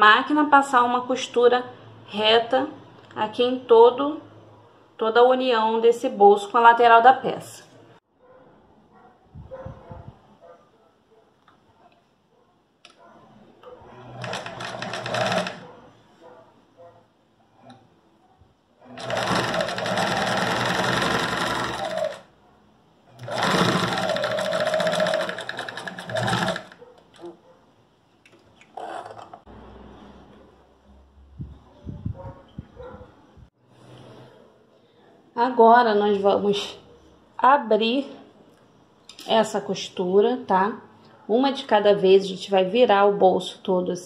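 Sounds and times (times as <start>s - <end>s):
sewing machine sewing: 13.8s - 15.7s, 18.8s - 22.3s, 23.1s - 27.3s.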